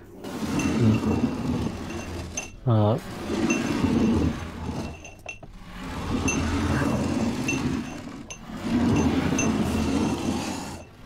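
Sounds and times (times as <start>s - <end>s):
low drone: 0.0s - 11.0s
high glassy clinks: 0.5s - 2.7s, 3.4s - 5.5s, 6.2s - 11.0s.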